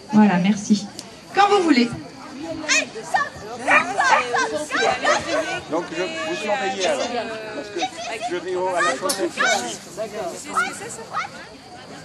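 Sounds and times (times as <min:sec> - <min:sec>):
high-pitched voices chattering: 0:00.0 - 0:12.0.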